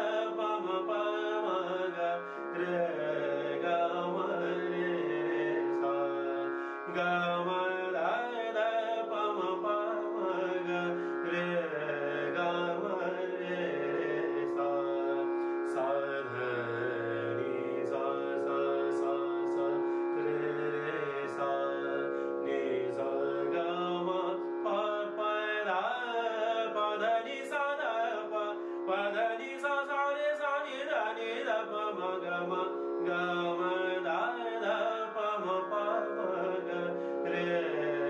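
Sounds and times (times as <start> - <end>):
harmonium sustained reed notes: 0.0 - 38.0
man singing: 0.0 - 38.0.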